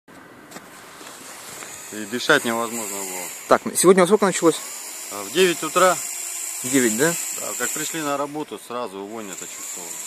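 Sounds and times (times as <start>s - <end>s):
outdoor background noise: 0.1s - 10.0s.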